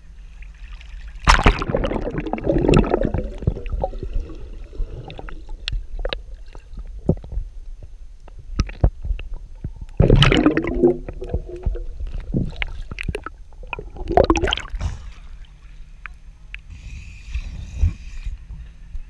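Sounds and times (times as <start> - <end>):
muffled underwater rumble: 0.0 - 19.0
gurgling rush of water and bubbles: 0.6 - 15.6.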